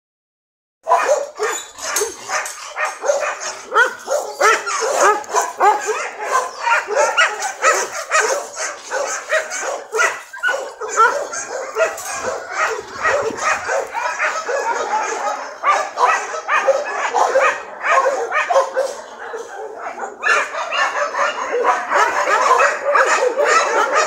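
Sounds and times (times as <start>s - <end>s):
small dog yapping: 9.0s - 14.8s.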